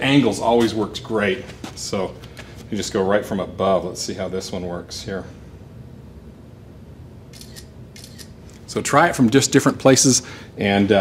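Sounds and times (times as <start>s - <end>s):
low room hum: 0.0s - 11.0s
camera shutter clicks: 7.3s - 8.4s.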